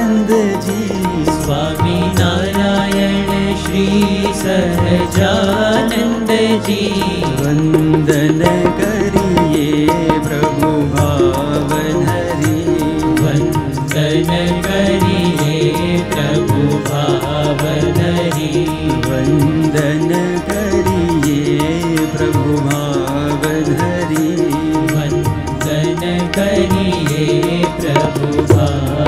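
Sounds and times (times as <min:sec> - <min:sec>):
harmonium melody: 0:00.0 - 0:29.0
tabla and drum rhythm: 0:00.0 - 0:29.0.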